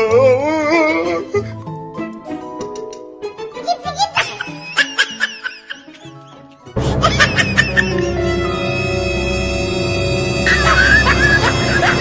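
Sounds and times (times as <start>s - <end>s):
background music: 0.0s - 12.0s
breathy laugh: 4.1s - 8.3s, 10.5s - 12.0s.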